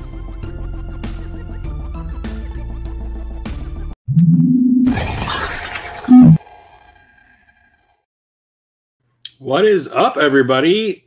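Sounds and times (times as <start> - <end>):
rising synth tone: 4.1 - 7.7
shattering glassy rush: 4.9 - 7.5.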